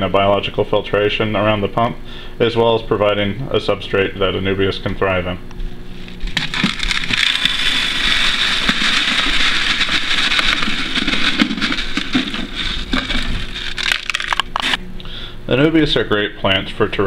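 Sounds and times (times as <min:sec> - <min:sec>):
pellets pouring into glass tank: 0:06.0 - 0:14.8.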